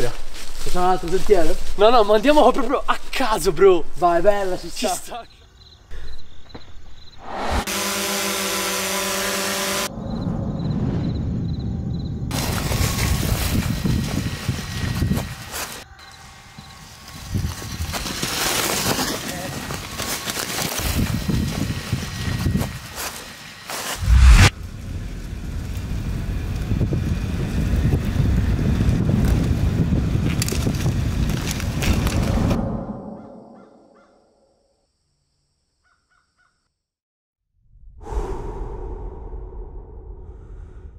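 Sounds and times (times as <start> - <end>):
bike tyres rushing through leaves: 0.0 - 3.2, 12.3 - 32.6
drone propeller hum: 24.0 - 28.4.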